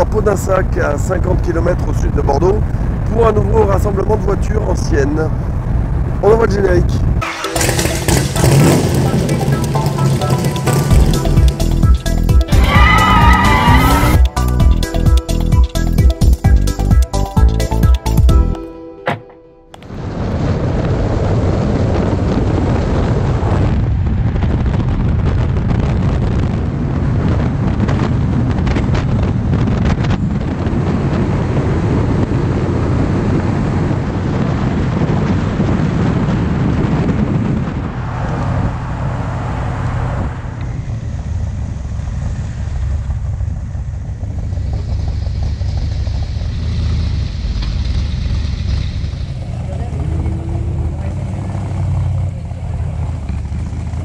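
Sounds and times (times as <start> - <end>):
road and wind noise: 0.0 - 54.0.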